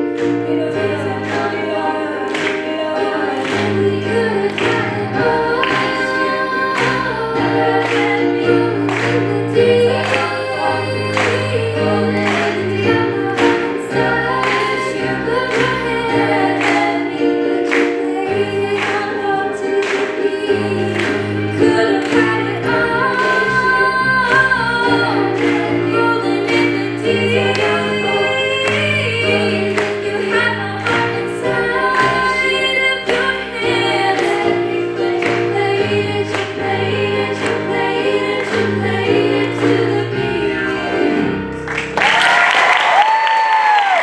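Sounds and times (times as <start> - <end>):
women singing in harmony: 0.0 - 41.6
keyboard accompaniment: 0.0 - 42.4.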